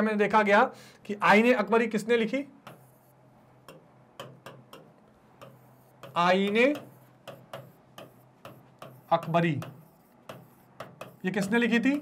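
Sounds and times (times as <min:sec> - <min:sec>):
pen tapping on screen: 0:02.6 - 0:02.9, 0:03.6 - 0:12.0.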